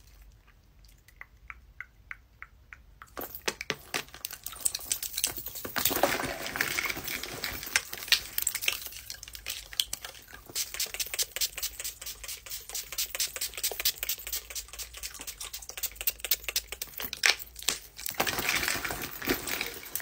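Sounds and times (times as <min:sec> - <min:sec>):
rummaging through handbag: 0:03.2 - 0:09.1, 0:18.0 - 0:20.0.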